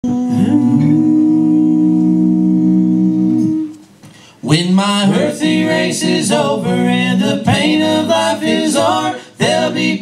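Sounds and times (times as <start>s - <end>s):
men humming in harmony: 0.0s - 3.8s.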